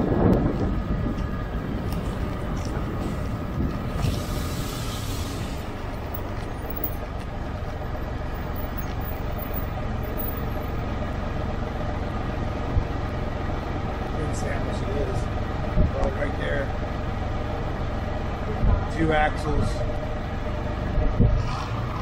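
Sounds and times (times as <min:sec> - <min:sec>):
wind noise on microphone: 0:00.0 - 0:06.3, 0:15.7 - 0:16.1, 0:20.8 - 0:22.0
motorcycle engine rumbling: 0:00.0 - 0:22.0.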